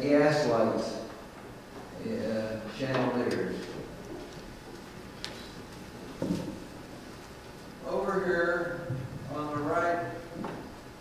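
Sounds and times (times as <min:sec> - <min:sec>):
man speaking: 0:02.0 - 0:03.8, 0:07.8 - 0:10.2.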